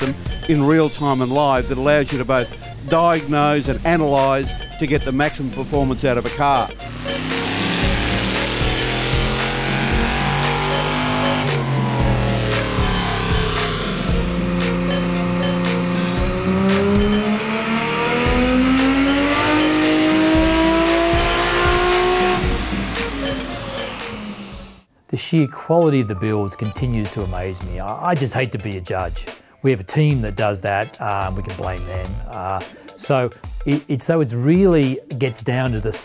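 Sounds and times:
car engine revving hard: 6.8s - 24.8s.

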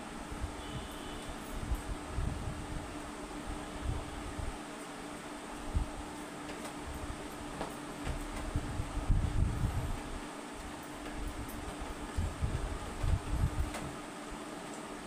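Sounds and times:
room hum: 0.0s - 15.0s
faint steady tone: 0.6s - 1.6s.

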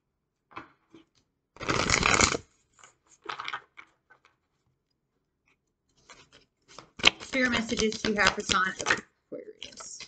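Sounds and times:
cards being riffle-shuffled: 5.9s - 9.0s
cards tapping on table: 7.0s - 9.0s.

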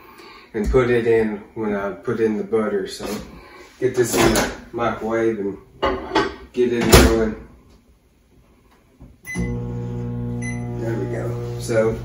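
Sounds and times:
microwave oven humming: 9.3s - 12.0s.

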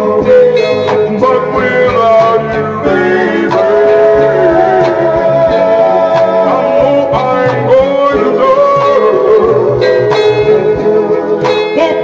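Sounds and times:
soul record playing: 0.0s - 12.0s.

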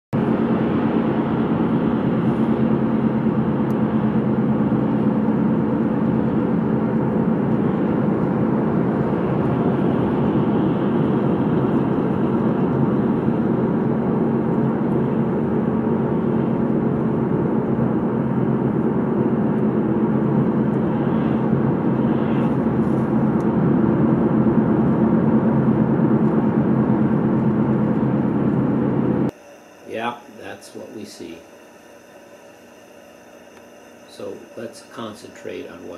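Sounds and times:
car cabin road and engine drone: 0.2s - 29.4s.

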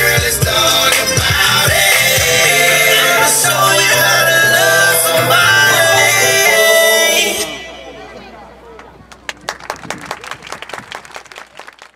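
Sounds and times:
audience applauding: 8.8s - 11.9s.

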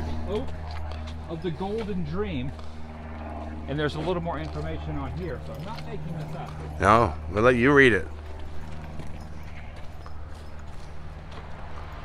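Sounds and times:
footsteps on dirt and grass: 0.0s - 12.0s.

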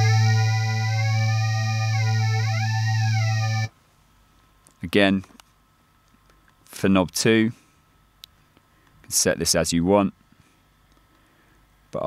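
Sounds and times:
synthesizer low note with sweeping overtones: 0.0s - 3.7s.

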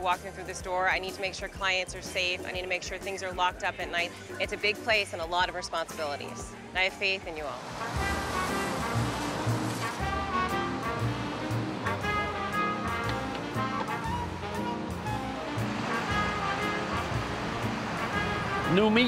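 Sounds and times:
background music with steady beat: 0.0s - 19.0s
water spraying from a hose: 7.5s - 13.6s.

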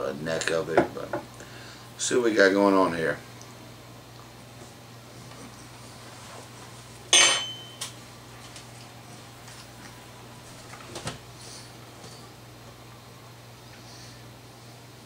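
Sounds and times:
metal spoon clinking on surface: 7.1s - 7.8s.

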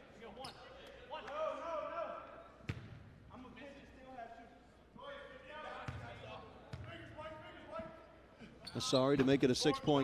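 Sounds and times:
voices in gym: 0.0s - 10.0s.

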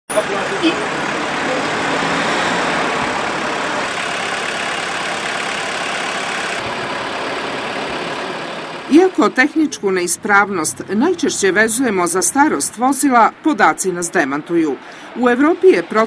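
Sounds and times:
car engines running: 0.1s - 16.0s
cars driving past: 0.1s - 16.0s.

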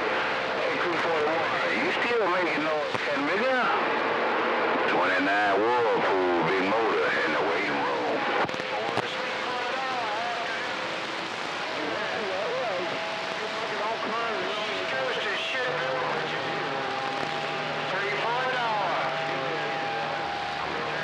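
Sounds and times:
radio static: 0.0s - 21.0s
garbled radio voices: 4.9s - 21.0s.

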